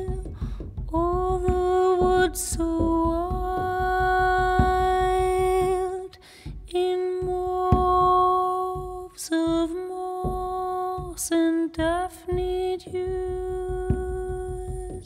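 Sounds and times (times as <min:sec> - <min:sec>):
woman singing long held notes: 0:00.0 - 0:15.0.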